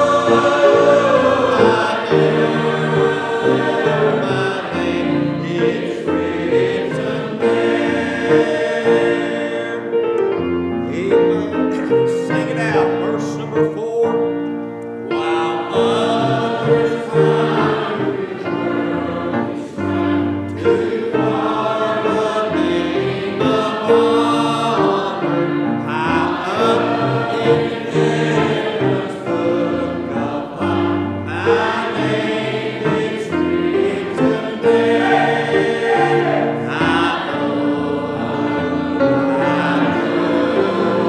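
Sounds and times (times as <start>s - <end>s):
congregation singing a hymn: 0.0s - 41.0s.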